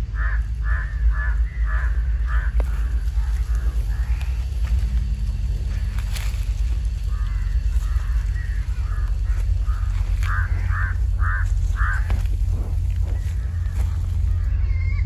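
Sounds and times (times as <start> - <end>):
bird calling: 0.0 - 15.0
low rumble: 0.0 - 15.0.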